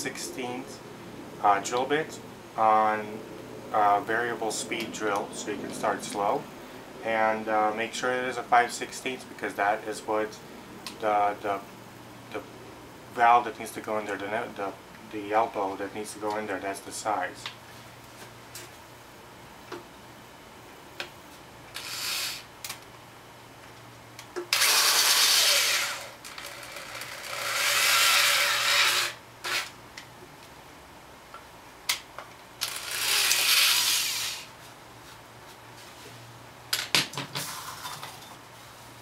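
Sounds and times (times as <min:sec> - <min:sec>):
electric drill boring plastic: 0:21.8 - 0:22.5, 0:24.5 - 0:29.7, 0:32.6 - 0:34.5.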